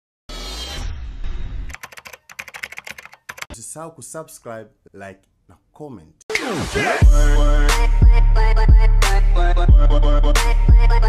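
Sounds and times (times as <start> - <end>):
keyboard typing clicks: 1.7 - 3.5.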